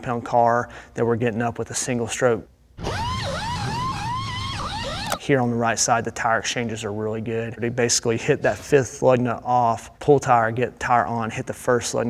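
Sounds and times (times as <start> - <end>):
pneumatic impact gun whining: 2.8 - 5.2.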